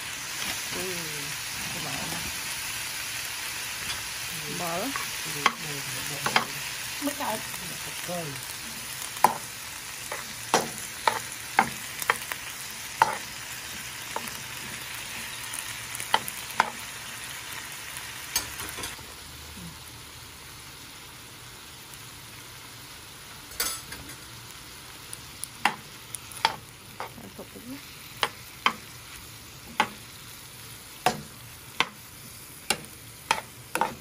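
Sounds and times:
food sizzling in a frying pan: 0:00.0 - 0:34.0.

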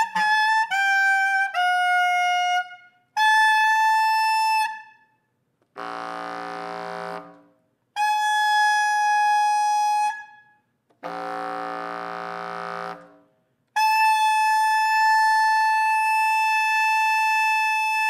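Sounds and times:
bass clarinet playing: 0:00.0 - 0:05.0, 0:05.7 - 0:10.4, 0:11.0 - 0:18.0.

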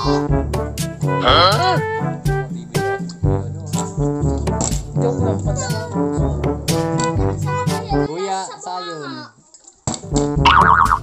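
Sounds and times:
comic brass-style music: 0:00.0 - 0:08.1, 0:10.0 - 0:11.0.

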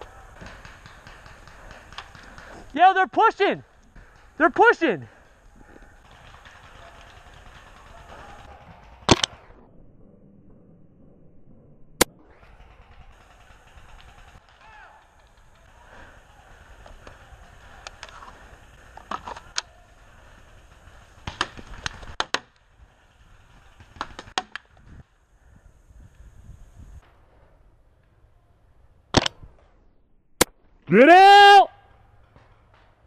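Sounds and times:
paintball markers firing: 0:00.0 - 0:02.8, 0:03.7 - 0:09.4, 0:12.0 - 0:22.6, 0:23.5 - 0:24.8, 0:29.1 - 0:29.6.

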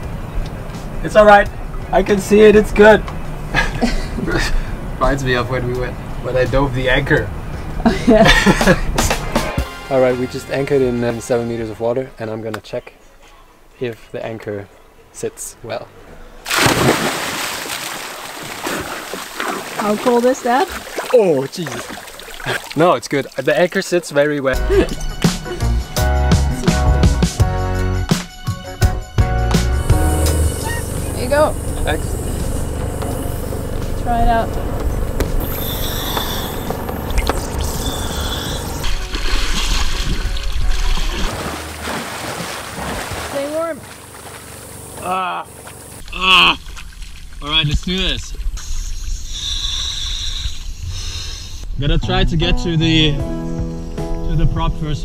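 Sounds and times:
person splashing into water: 0:16.5 - 0:23.4, 0:38.8 - 0:44.6
churned water hissing: 0:16.5 - 0:23.8, 0:29.7 - 0:34.2, 0:35.4 - 0:51.6
steady low rumble: 0:29.6 - 0:41.5.

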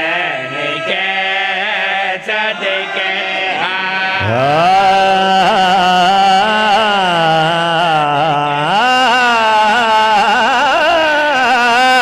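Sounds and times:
man chanting into microphone: 0:03.6 - 0:12.0.

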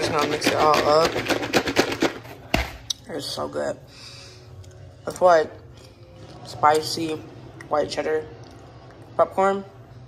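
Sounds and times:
snacks rattling in plastic bowl: 0:00.0 - 0:02.4.

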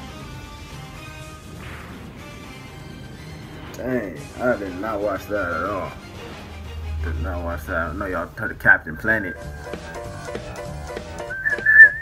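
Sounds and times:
faint background music: 0:00.0 - 0:12.0
loud high whistled note: 0:11.3 - 0:12.0.

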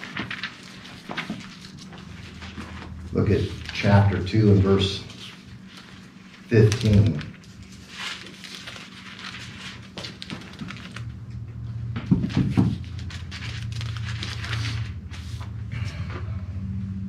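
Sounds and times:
pages being turned: 0:00.0 - 0:11.3, 0:12.7 - 0:15.6
low steady hum: 0:00.0 - 0:17.0.

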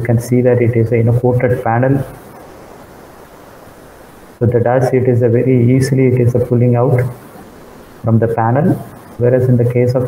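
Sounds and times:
steady hiss-like noise: 0:00.0 - 0:10.0.

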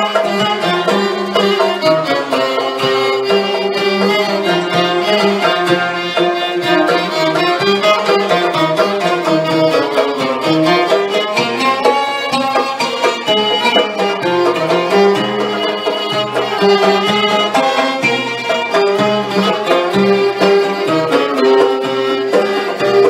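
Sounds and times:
ouds plucking: 0:00.0 - 0:23.0
violins bowing melody: 0:00.0 - 0:23.0.

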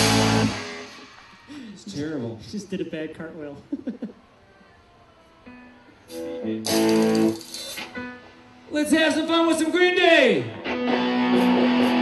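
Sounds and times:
guitar chords strummed: 0:00.0 - 0:01.2, 0:06.1 - 0:08.5, 0:10.5 - 0:12.0.

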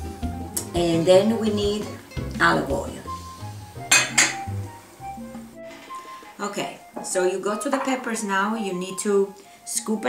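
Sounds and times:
background jazz music: 0:00.0 - 0:10.0.

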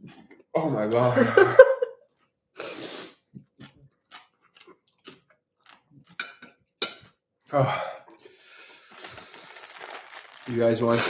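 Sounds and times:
person hissing air through mouth: 0:02.6 - 0:03.2.

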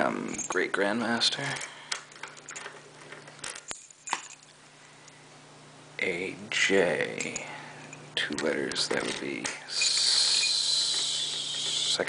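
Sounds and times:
keys clinking: 0:00.2 - 0:00.8, 0:01.4 - 0:04.6, 0:07.2 - 0:12.0.

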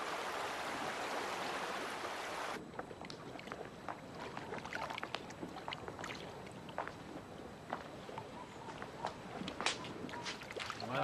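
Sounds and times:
water lapping against shore: 0:00.0 - 0:11.0.

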